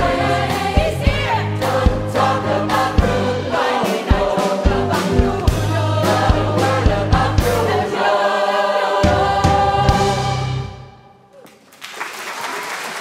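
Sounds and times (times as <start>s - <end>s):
pop choir with band: 0.0s - 10.9s
drum hits: 3.0s - 7.8s
audience applause: 11.4s - 13.0s.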